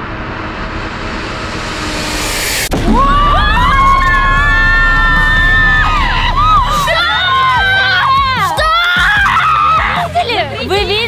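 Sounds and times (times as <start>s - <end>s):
rising whoosh: 0.0s - 8.5s
low rumble: 0.0s - 8.6s
women screaming: 2.9s - 10.6s.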